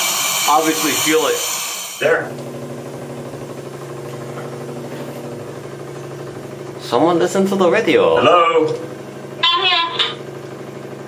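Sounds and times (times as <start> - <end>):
air compressor running: 0.0 - 9.5.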